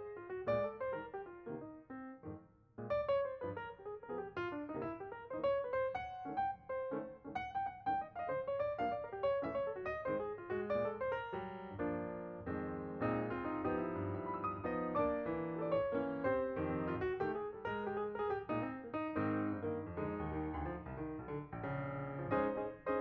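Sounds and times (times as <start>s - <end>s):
piano music: 0.0s - 23.0s.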